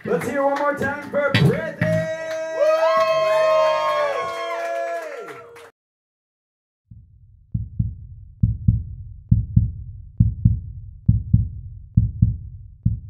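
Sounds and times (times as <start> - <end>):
heartbeat thumps: 6.9 - 13.0.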